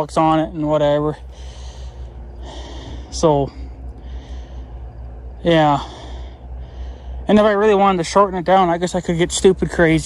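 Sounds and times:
steady low hum: 0:00.0 - 0:10.0
man breathing close to microphone: 0:01.2 - 0:07.3.

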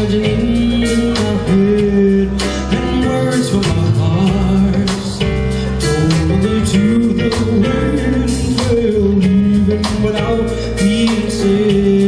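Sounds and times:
funk blues band playing: 0:00.0 - 0:12.0.

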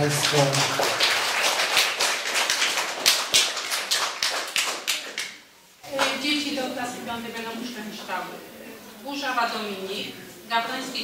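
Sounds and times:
people clapping: 0:00.0 - 0:06.2.

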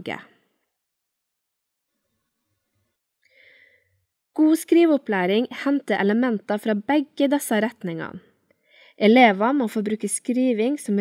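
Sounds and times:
person breathing in: 0:03.2 - 0:04.0, 0:08.6 - 0:09.0.

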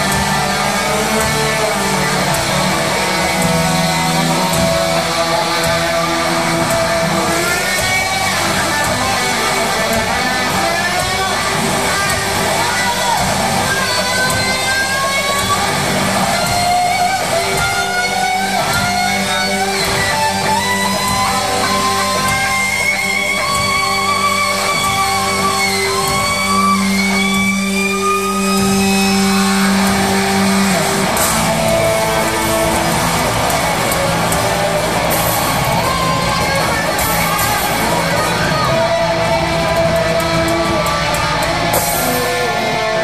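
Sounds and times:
distorted electric guitars: 0:00.0 - 0:43.0
live rock band playing: 0:00.0 - 0:43.0.

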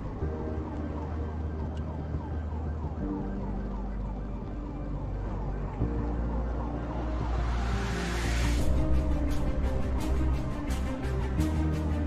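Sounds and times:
held music chords: 0:00.0 - 0:12.0.

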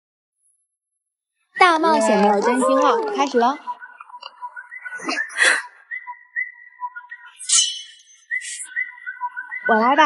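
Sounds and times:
thin whistle-like tone: 0:04.6 - 0:10.0.

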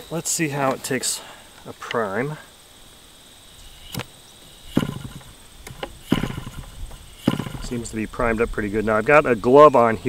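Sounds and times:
model engine priming burst: 0:03.6 - 0:08.1.

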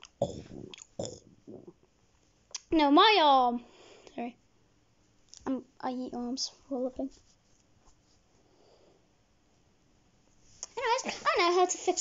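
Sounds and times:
rubbing and rustling on fabric: 0:07.0 - 0:08.5.

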